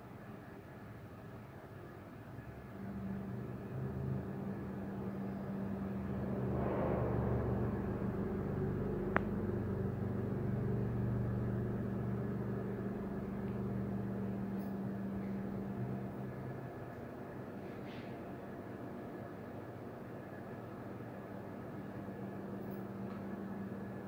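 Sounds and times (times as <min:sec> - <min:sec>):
low mechanical hum: 0:00.0 - 0:24.0.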